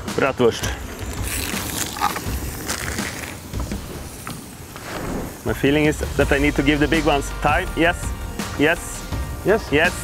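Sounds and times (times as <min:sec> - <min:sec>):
sausage sizzling in oil: 0:00.5 - 0:10.0.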